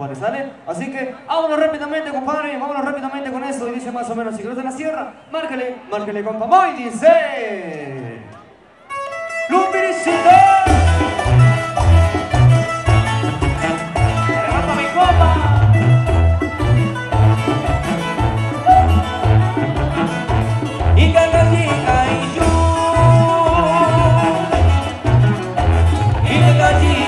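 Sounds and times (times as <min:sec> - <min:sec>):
live band playing: 0:08.8 - 0:27.0
guitars: 0:08.9 - 0:27.0
bass line: 0:10.0 - 0:27.0
drums: 0:10.0 - 0:27.0.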